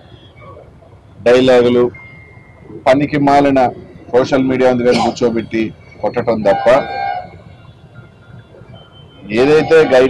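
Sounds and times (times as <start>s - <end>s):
outdoor background noise: 0.0s - 10.0s
man talking: 1.2s - 2.0s, 2.8s - 7.1s, 9.2s - 10.0s.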